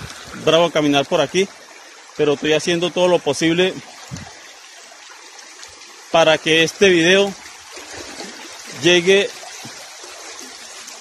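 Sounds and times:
floodwater rushing: 0.0s - 11.0s
soft low thump: 4.0s - 4.4s.

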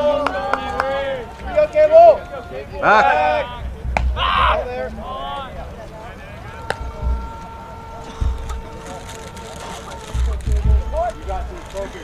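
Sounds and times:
scattered voices: 0.0s - 12.0s
wind rumbling on microphone: 0.8s - 12.0s.

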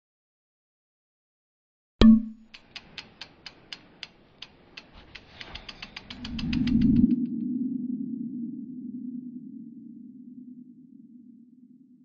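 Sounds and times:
mechanical ticking clicks: 2.0s - 7.1s.

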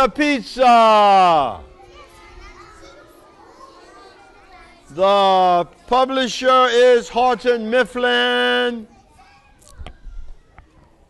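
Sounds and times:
young children chattering: 1.0s - 11.0s.

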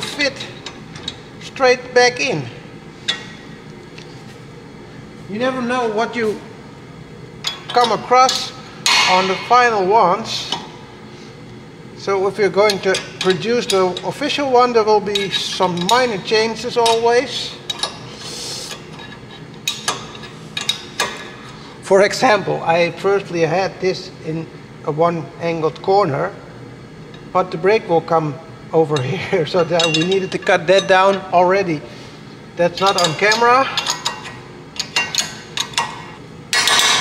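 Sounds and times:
spanner clinking against bolts: 0.0s - 1.4s, 12.6s - 18.1s, 18.7s - 21.4s, 29.0s - 31.3s, 32.7s - 37.0s
wrench clinking on metal: 29.6s - 31.2s, 32.8s - 37.0s.

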